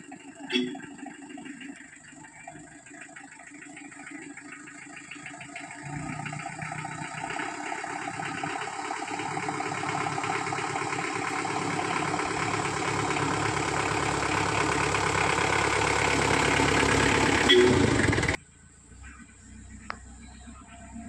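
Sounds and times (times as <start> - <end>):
vehicle engine running at low speed: 0.0 - 21.0.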